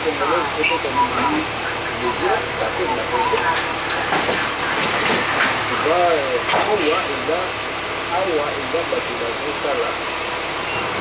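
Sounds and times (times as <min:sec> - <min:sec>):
diesel engine low drone: 0:00.0 - 0:11.0
road and interior noise: 0:00.0 - 0:11.0.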